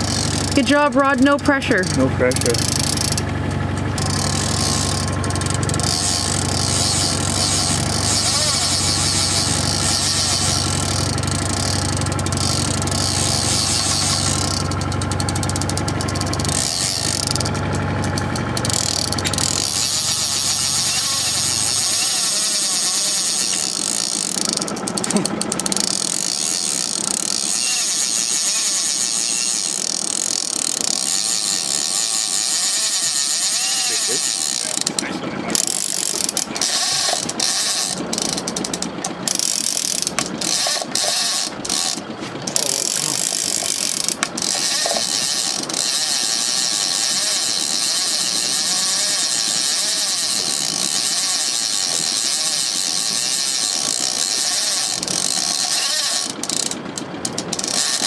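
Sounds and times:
fishing reel clicker ratcheting: 0:00.0 - 0:58.0.

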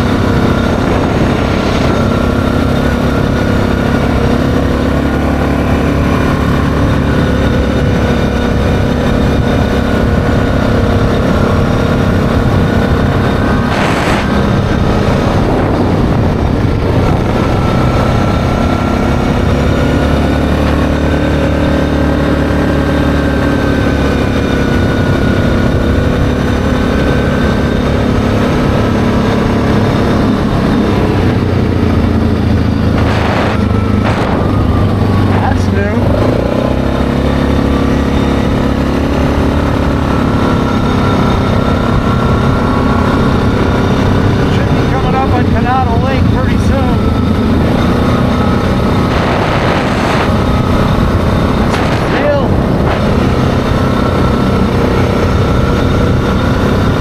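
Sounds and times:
atv engine running: 0:00.0 - 0:57.0.

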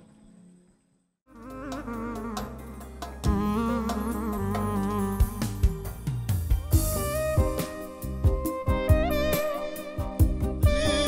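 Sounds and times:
music: 0:01.3 - 0:11.0
wavering melodic music: 0:01.3 - 0:11.0.

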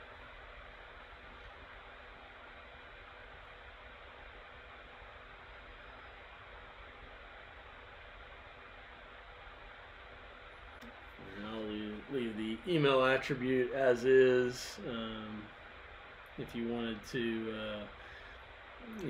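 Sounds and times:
background hiss: 0:00.0 - 0:19.0
faint low hum: 0:00.0 - 0:19.0.

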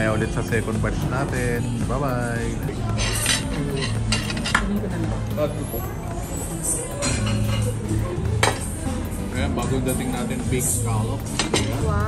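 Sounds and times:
plates and cutlery clinking: 0:02.9 - 0:05.1, 0:06.6 - 0:08.8, 0:11.2 - 0:11.9.

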